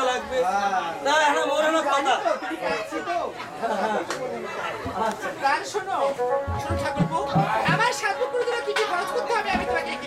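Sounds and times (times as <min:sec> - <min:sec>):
people talking over each other: 0:00.0 - 0:10.0.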